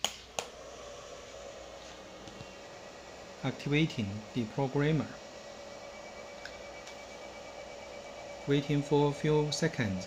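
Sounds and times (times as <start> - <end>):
cooling fan whirring: 0.0 - 10.0.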